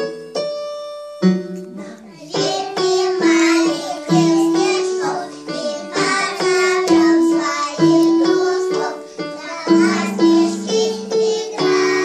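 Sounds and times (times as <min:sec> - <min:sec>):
musical accompaniment: 0:00.0 - 0:12.0
small children singing: 0:01.9 - 0:12.0.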